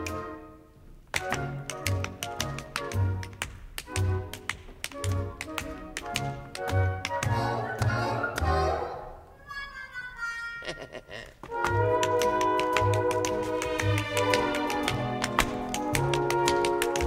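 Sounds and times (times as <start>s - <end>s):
sharp percussive taps: 1.1s - 8.5s, 11.4s - 17.0s
show-tune orchestra playing: 5.0s - 10.6s, 11.5s - 17.0s.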